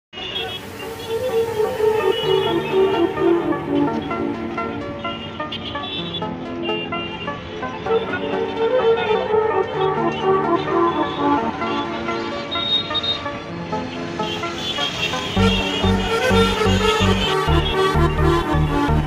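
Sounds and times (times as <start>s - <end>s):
background music with held notes: 0.6s - 19.0s.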